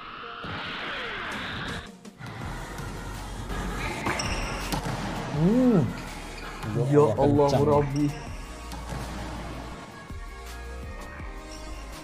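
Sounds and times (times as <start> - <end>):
volleyballs hit and bouncing: 3.8 - 5.8.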